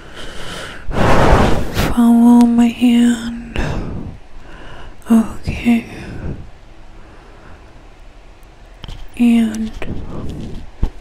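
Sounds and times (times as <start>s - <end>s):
microphone hiss: 0.0s - 11.0s
low rumble: 0.9s - 7.9s.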